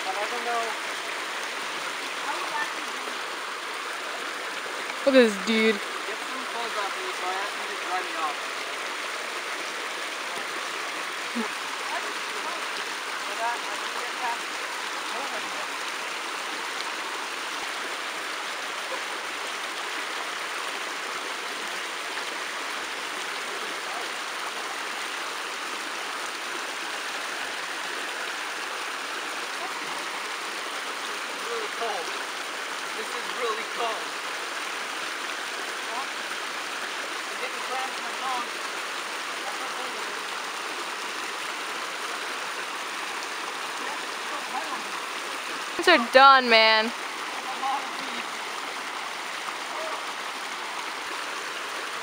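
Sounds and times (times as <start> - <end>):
creek water rushing over rocks: 0.0 - 52.0.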